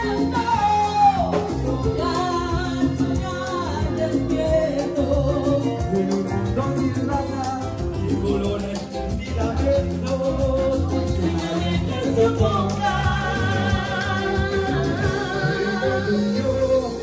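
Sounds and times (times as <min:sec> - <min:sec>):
live latin band playing: 0:00.0 - 0:17.0
person singing: 0:00.0 - 0:17.0.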